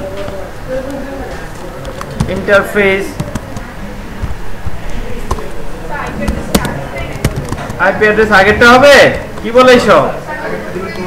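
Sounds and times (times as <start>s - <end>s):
murmur of background voices: 0.0s - 11.0s
computer keyboard clicks: 3.1s - 3.7s, 6.2s - 7.8s.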